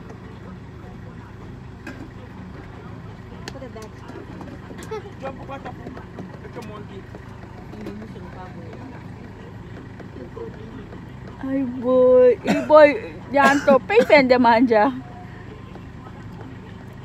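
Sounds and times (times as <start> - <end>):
faint voices: 0.0 - 17.0
van engine idling: 0.0 - 17.0.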